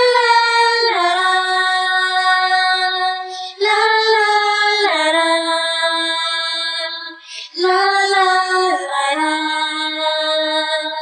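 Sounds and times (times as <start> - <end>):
woman singing unaccompanied: 0.0 - 11.0
singer breathing in: 3.2 - 3.6, 7.1 - 7.6.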